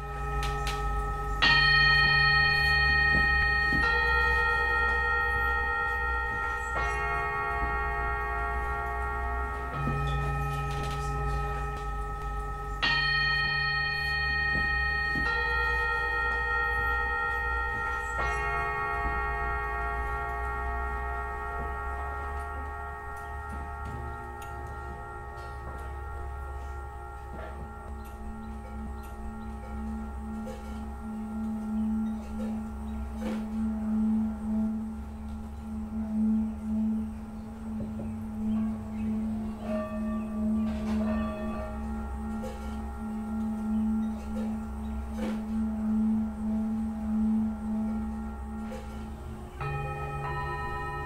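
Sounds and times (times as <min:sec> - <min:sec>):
singing bowls ringing: 0:00.0 - 0:51.0.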